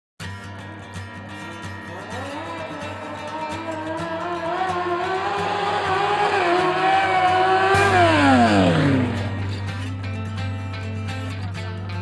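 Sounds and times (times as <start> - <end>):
music: 0.2 - 12.0
motorcycle engine revving: 1.3 - 11.3.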